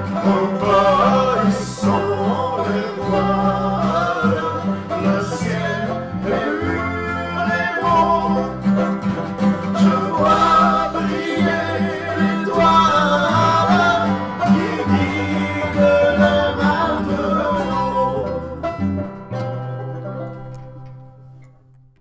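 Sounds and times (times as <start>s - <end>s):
person singing: 0.0s - 19.0s
folk song on banjo and guitar: 0.0s - 22.0s.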